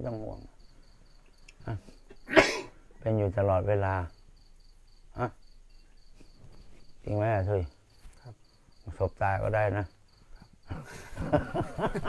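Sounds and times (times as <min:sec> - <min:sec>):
cricket chirping: 0:00.0 - 0:12.0.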